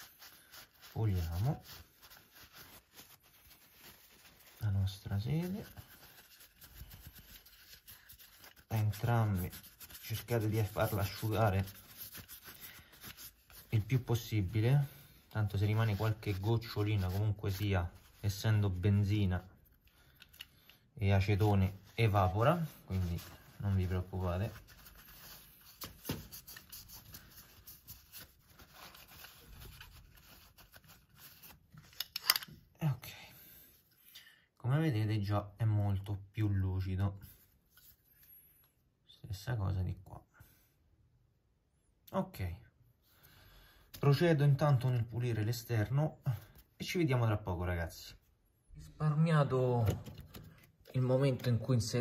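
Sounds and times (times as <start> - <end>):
paper towel rubbing and rustling: 0.0 - 19.5, 21.1 - 31.9.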